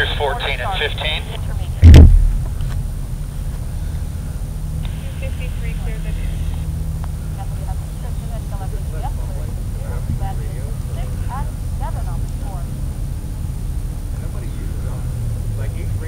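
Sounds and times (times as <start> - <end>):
faint distant voices: 0.0 - 2.5, 3.4 - 12.8, 14.1 - 16.0
steady low rumble: 0.0 - 16.0
loud thump: 1.8 - 2.9.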